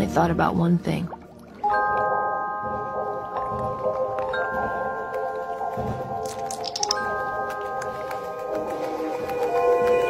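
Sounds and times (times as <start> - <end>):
soft chime-like music: 1.6 - 10.0.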